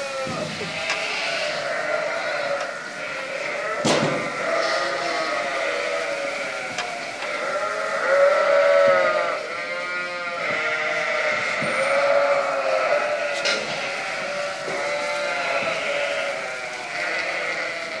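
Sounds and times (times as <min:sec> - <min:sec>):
sheep and lambs bleating: 0:00.0 - 0:18.0.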